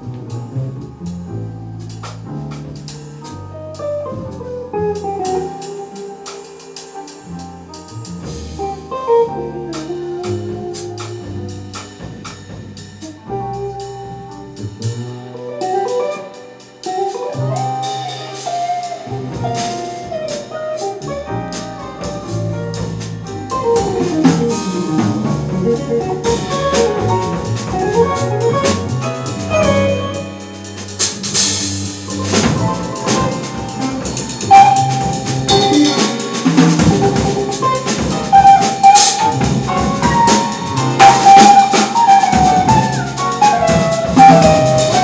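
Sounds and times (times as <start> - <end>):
double bass walking line: 0.0 - 45.0
drum cymbals: 0.0 - 45.0
jazz melody: 0.0 - 45.0.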